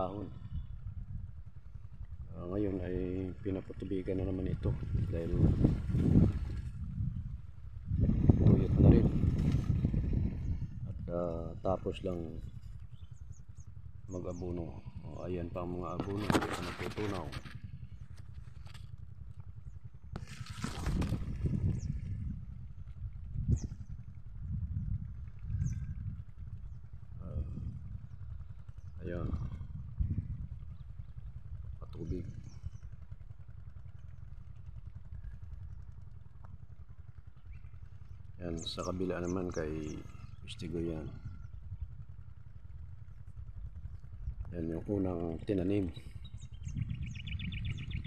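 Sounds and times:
wind buffeting microphone: 0.0s - 48.0s
corn leaves rustling: 20.2s - 21.4s.

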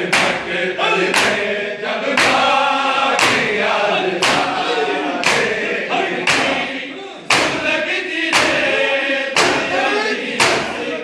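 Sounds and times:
men chanting together: 0.0s - 11.0s
hands striking chests: 0.1s - 0.5s, 1.1s - 1.5s, 2.2s - 2.5s, 3.2s - 3.6s, 4.2s - 4.6s, 5.2s - 5.6s, 6.2s - 6.7s, 7.3s - 7.7s, 8.3s - 8.7s, 9.4s - 9.8s, 10.4s - 10.8s.

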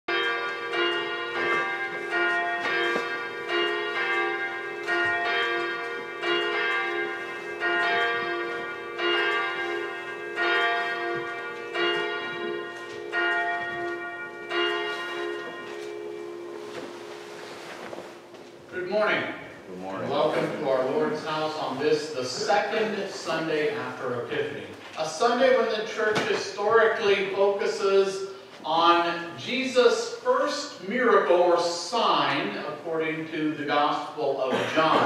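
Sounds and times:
church bell ringing: 0.1s - 35.0s.

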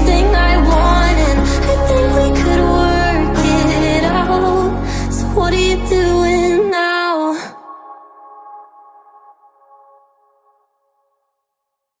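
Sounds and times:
pop ballad final chord: 0.0s - 6.8s.

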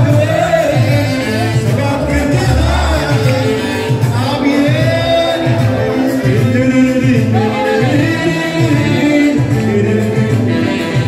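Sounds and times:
pulsing bass beat: 0.0s - 10.5s
live band music: 0.0s - 11.0s
person singing: 0.0s - 11.0s.

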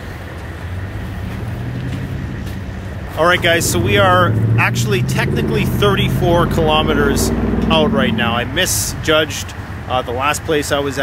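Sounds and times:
pickup engine idling: 0.0s - 11.0s.

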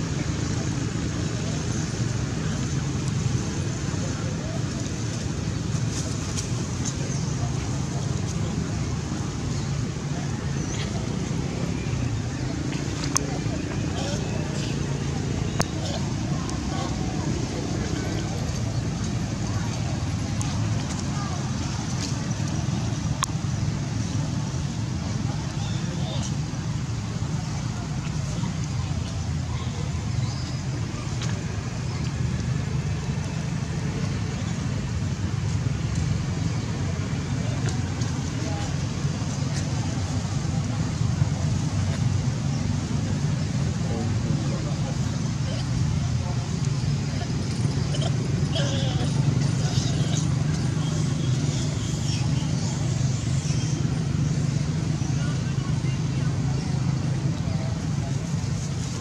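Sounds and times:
steady low rumble: 0.0s - 59.0s
indistinct background voices: 3.4s - 24.3s
faint clicks: 23.2s - 23.4s.

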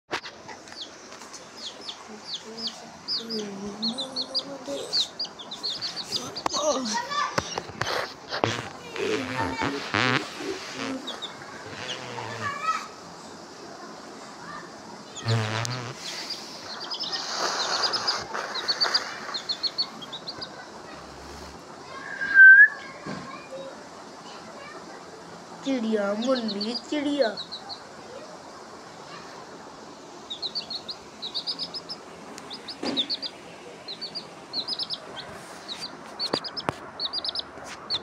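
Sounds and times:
chicks peeping: 0.1s - 13.6s, 15.0s - 22.5s, 25.7s - 28.2s, 30.1s - 38.0s
soft rustling: 5.5s - 12.5s, 15.9s - 20.0s, 35.2s - 38.0s.

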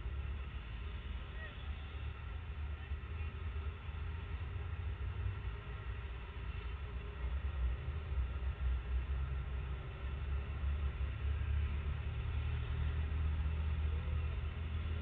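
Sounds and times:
low rumble of road traffic: 0.0s - 15.0s.

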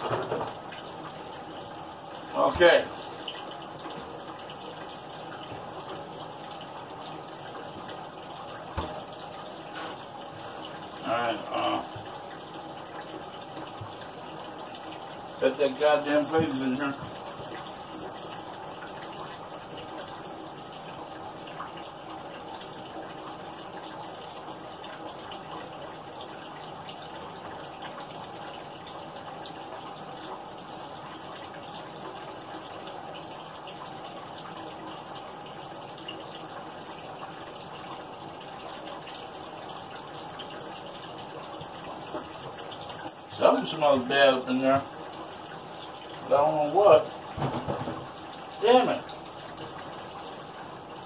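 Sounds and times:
running water rushing: 0.0s - 51.0s.

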